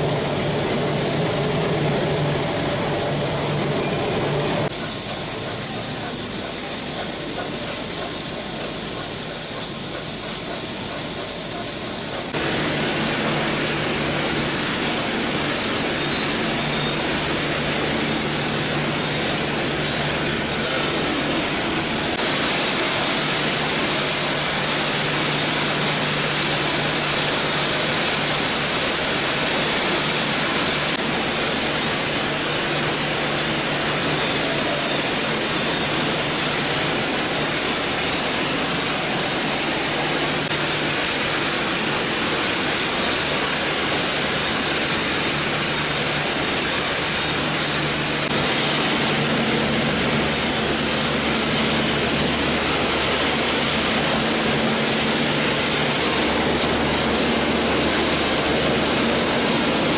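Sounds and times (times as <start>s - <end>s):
conveyors and processing machines: 0.0s - 59.9s.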